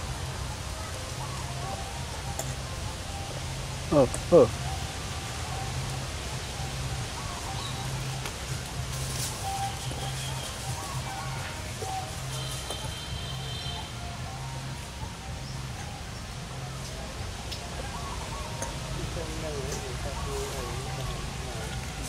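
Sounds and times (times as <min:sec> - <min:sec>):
faint bird calls: 0:00.2 - 0:22.0.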